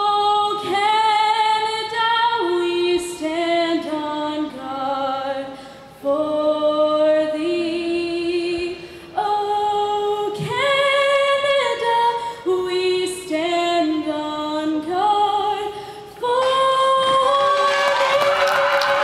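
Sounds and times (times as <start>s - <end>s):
woman singing unaccompanied: 0.0s - 18.1s.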